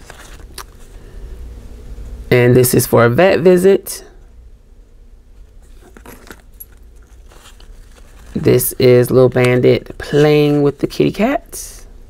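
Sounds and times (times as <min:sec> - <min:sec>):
paper rustling: 0:00.0 - 0:00.9, 0:05.6 - 0:10.9.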